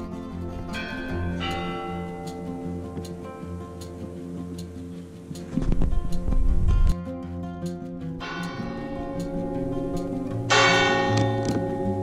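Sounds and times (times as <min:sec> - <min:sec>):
church bell tolling: 0:00.7 - 0:02.8, 0:08.2 - 0:12.0.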